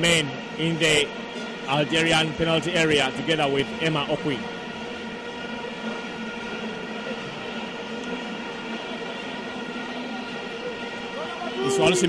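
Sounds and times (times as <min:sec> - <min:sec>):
stadium crowd noise: 0:00.0 - 0:12.0.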